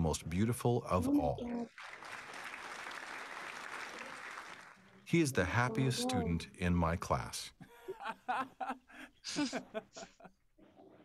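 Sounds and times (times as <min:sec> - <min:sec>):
applause: 0:01.6 - 0:05.0.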